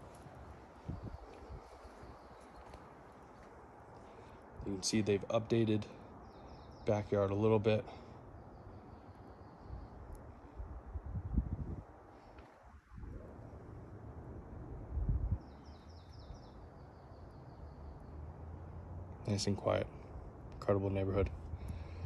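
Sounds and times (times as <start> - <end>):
low rumbling microphone bumps: 10.8 - 11.9
high bird chirps: 15.4 - 18.2.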